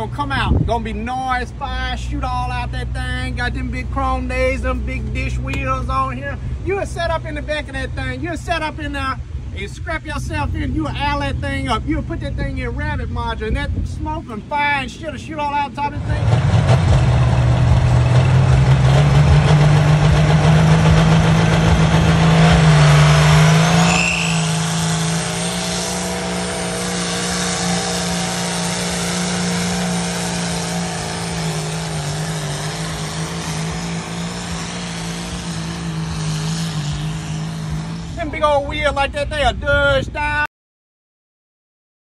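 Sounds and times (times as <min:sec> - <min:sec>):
tractor diesel engine running flat out: 0:15.7 - 0:38.9
high whistle: 0:23.0 - 0:25.3.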